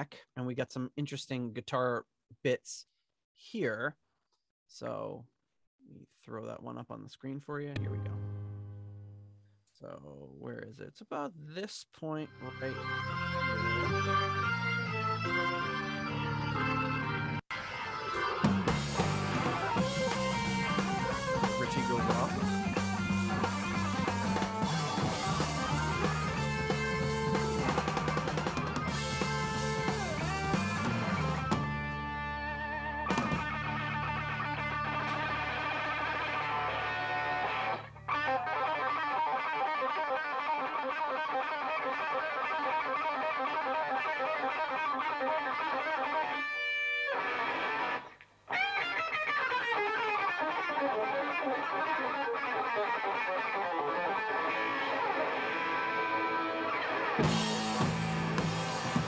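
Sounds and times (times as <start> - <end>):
low accompaniment: 7.7 - 9.4
electric guitar solo: 7.8 - 9.3, 12.3 - 59.0.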